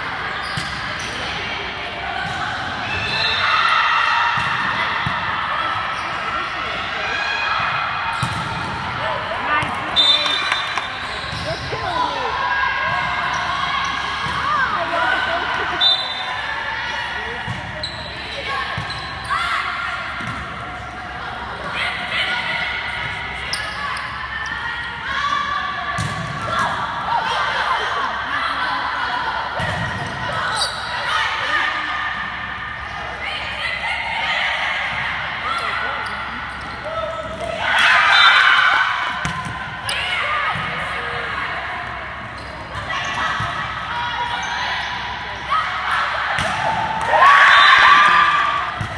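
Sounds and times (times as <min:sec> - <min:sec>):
voices calling out in gym: 0:00.0 - 0:48.9
volleyball hits: 0:04.3 - 0:05.4, 0:07.6 - 0:12.0, 0:37.3 - 0:41.2, 0:46.3 - 0:48.9.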